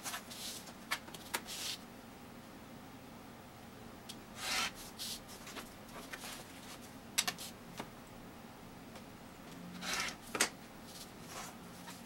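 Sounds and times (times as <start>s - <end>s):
rotary cutter cutting fabric: 9.8s - 10.2s.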